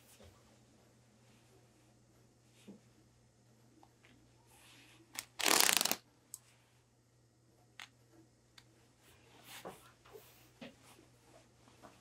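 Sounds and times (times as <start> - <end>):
seam tearing thread snaps: 5.2 - 6.0.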